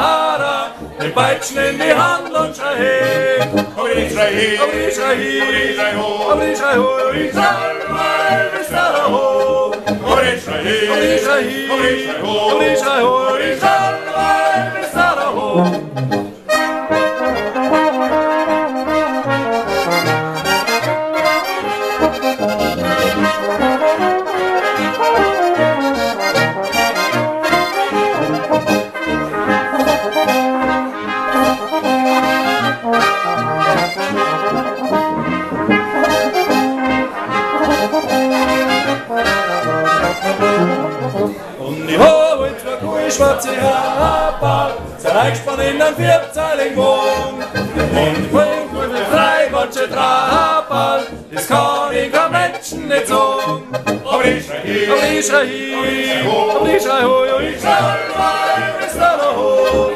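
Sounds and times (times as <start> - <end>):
folk band with clarinet and accordion: 0.0 - 59.9.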